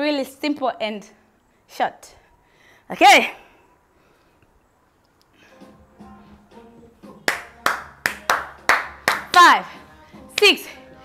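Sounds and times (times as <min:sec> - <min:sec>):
sharp hand claps: 0:07.2 - 0:09.5.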